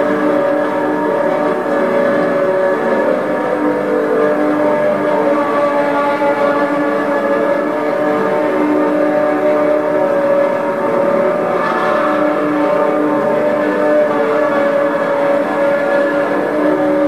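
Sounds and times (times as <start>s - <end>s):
ambient drone music: 0.0s - 17.0s.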